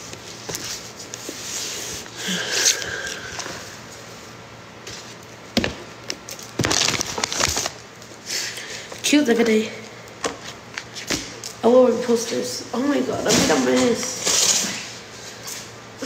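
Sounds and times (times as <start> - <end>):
packaging rustling and crackling: 6.0 - 8.1.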